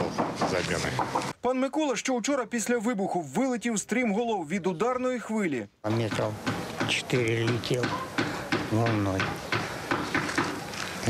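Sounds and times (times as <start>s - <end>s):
sharp knocks: 0.0s - 1.3s, 5.9s - 10.6s.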